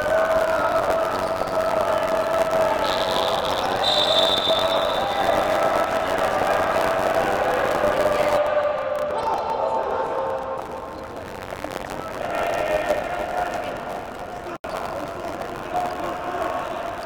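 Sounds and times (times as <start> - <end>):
crowd chanting and cheering: 0.0 - 17.0
referee's whistle blasts: 2.7 - 6.3.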